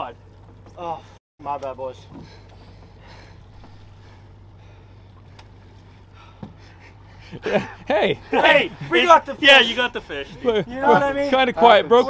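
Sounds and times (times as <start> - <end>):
outboard motor idling: 0.0 - 12.0
faint knocks: 5.1 - 6.8.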